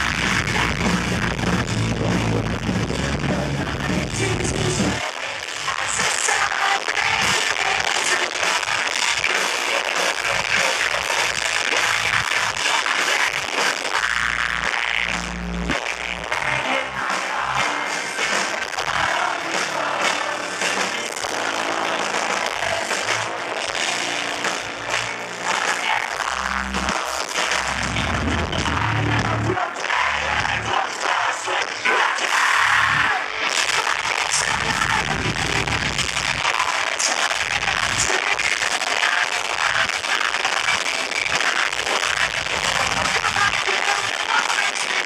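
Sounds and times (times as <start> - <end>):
rock band playing live: 0.0 - 45.0.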